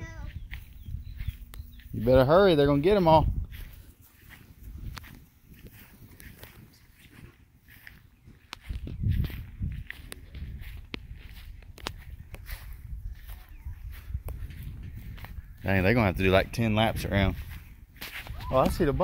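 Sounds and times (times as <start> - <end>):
footsteps on grass: 0.0 - 19.0.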